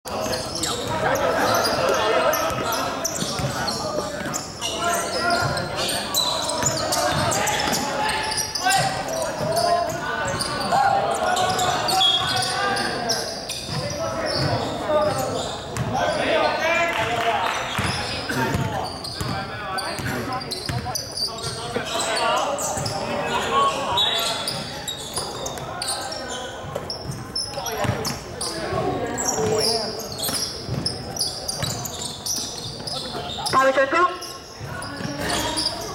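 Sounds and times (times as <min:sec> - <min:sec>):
players' voices: 0:00.1 - 0:35.9.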